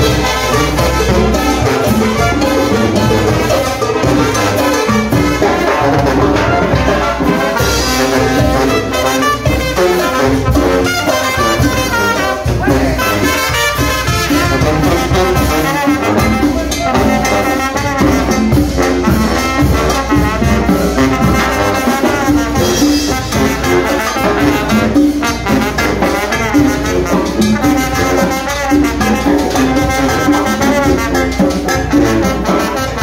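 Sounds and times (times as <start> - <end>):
brass band playing: 0.0 - 33.0
drums and cymbals beat: 0.0 - 33.0.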